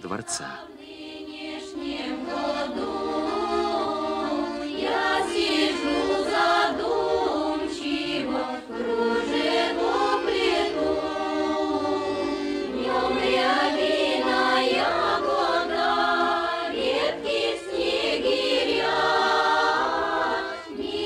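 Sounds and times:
women's choir singing: 0.3 - 21.0.

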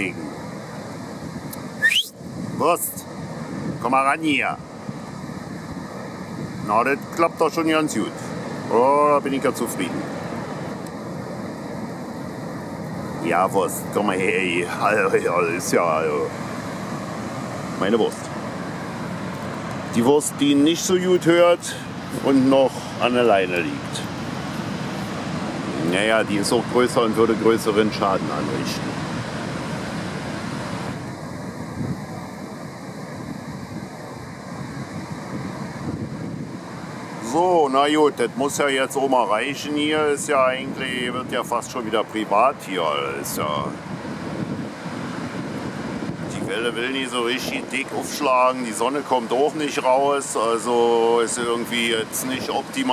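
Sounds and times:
wind on microphone: 0.0 - 8.8, 9.8 - 37.7, 39.4 - 52.9
ocean surf breaking: 0.0 - 52.9.

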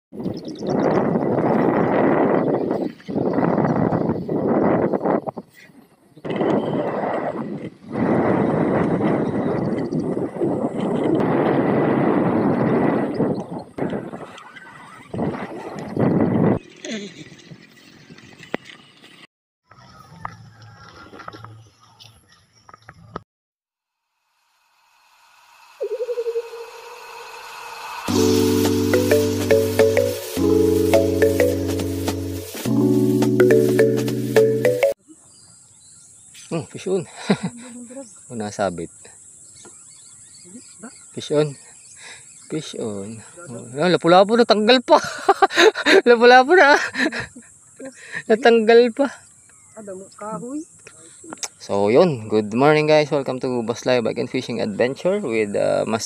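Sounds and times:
wind roaring over microphone: 0.1 - 5.6, 6.2 - 17.7
rising whoosh: 24.9 - 35.0
wavering pulsing tone: 25.7 - 31.8
high chirps: 25.7 - 35.0.

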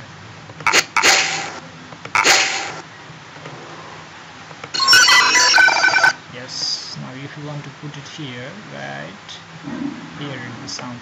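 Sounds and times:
electronic bell ringing: 4.8 - 6.2.

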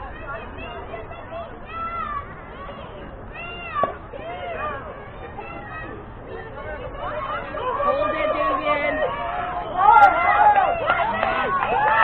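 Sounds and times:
children calling out: 0.0 - 12.0.

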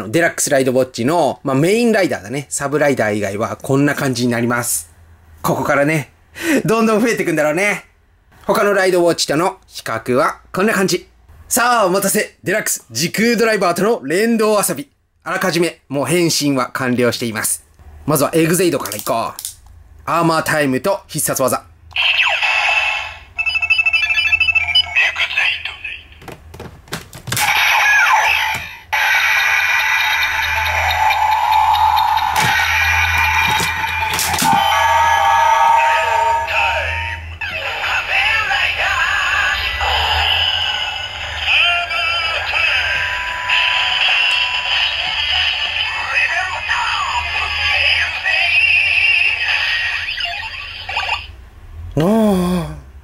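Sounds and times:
synthesized announcement voice: 24.0 - 26.2, 27.4 - 51.3
toy belt electronic music: 27.4 - 38.3, 39.6 - 51.3.

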